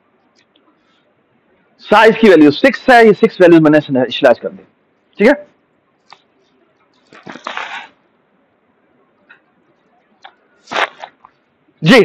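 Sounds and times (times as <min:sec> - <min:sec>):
rustling crackle: 0:06.9 - 0:08.0, 0:10.6 - 0:11.4.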